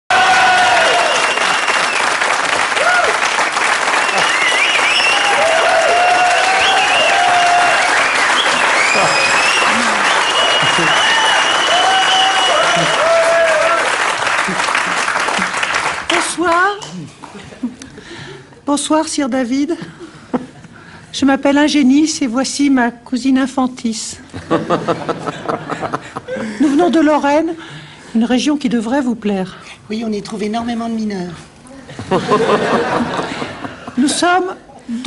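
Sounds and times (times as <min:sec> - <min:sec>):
audience applauding: 0:00.1 - 0:16.6.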